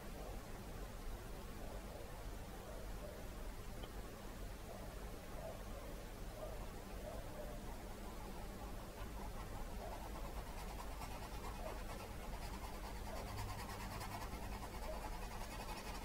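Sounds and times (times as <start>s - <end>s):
steady low hum: 0.0s - 16.0s
paintbrush scratching on canvas: 8.2s - 16.0s.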